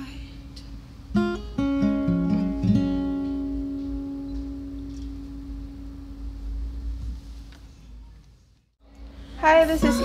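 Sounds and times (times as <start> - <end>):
acoustic guitar chord ringing: 1.1 - 7.0.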